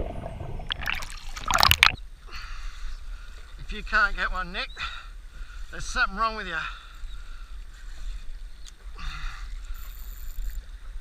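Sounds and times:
low rumble of wind and water: 0:00.0 - 0:11.0.

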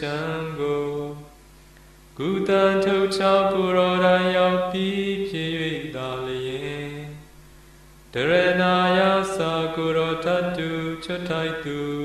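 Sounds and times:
man chanting: 0:00.0 - 0:01.3, 0:02.2 - 0:07.2, 0:08.2 - 0:12.0.

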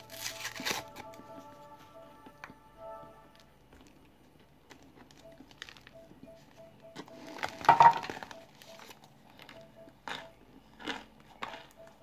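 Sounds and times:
faint background music: 0:00.0 - 0:12.0
cornstarch crunching when eaten: 0:09.4 - 0:11.8.

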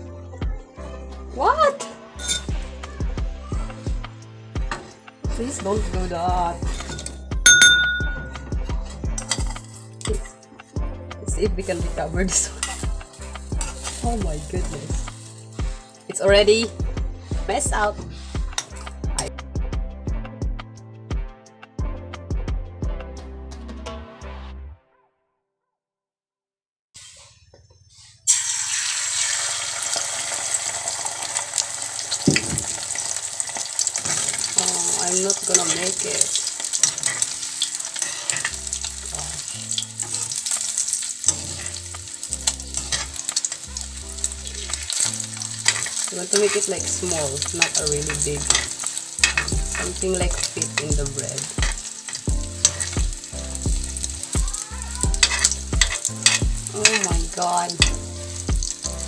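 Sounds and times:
eggs sizzling in a hot pan: 0:03.7 - 0:10.3, 0:11.5 - 0:19.1, 0:28.2 - 0:59.0.

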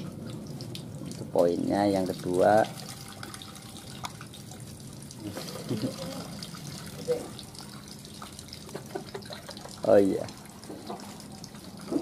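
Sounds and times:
running water: 0:00.0 - 0:12.0.

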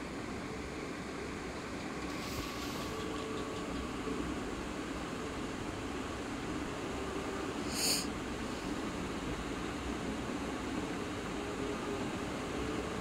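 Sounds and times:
faint hiss: 0:00.0 - 0:13.0
steady background hum: 0:00.0 - 0:13.0.

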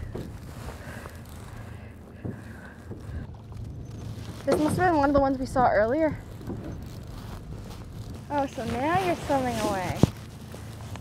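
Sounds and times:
wind and water noise: 0:00.0 - 0:11.0.

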